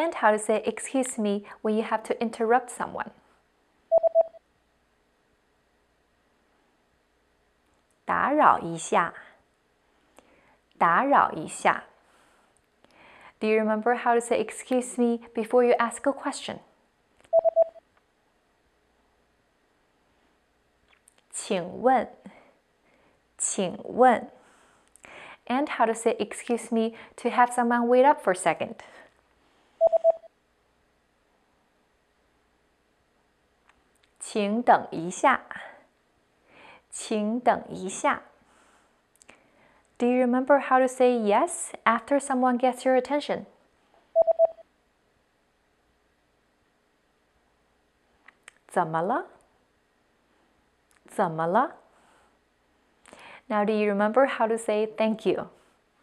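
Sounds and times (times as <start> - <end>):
electronic beeps: 3.9 - 4.4, 17.3 - 17.8, 29.8 - 30.3, 44.2 - 44.6.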